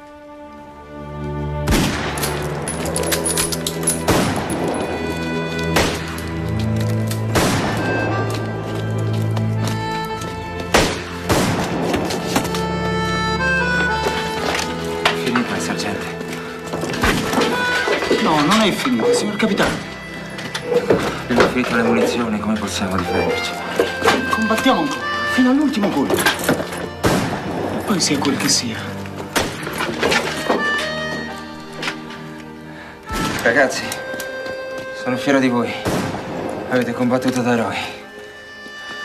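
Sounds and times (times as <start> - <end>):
dramatic orchestral score: 0.0 - 39.0
musket shots: 1.7 - 2.6, 4.0 - 4.7, 5.7 - 6.3, 7.3 - 8.1, 10.7 - 12.5, 27.0 - 27.7, 35.8 - 36.7.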